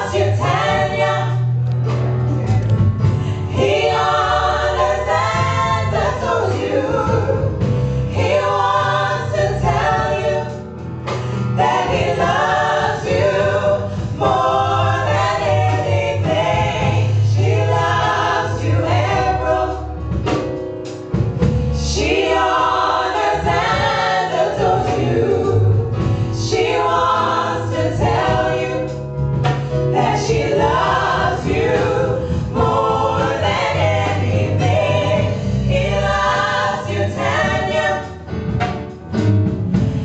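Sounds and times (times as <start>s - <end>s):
women singing gospel harmony: 0.0s - 1.6s, 3.0s - 20.5s, 21.7s - 38.4s
low musical accompaniment: 0.0s - 40.0s.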